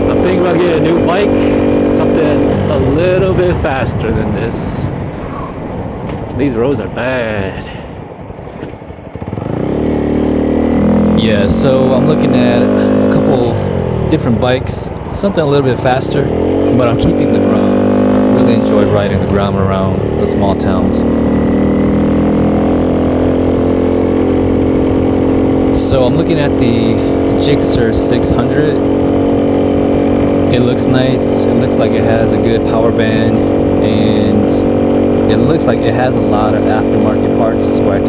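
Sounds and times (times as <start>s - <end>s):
motorcycle engine revving: 0.0s - 6.0s, 8.6s - 38.0s.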